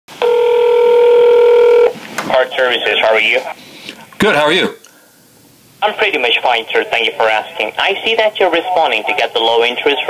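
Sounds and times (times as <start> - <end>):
telephone line beep: 0.2 - 1.9.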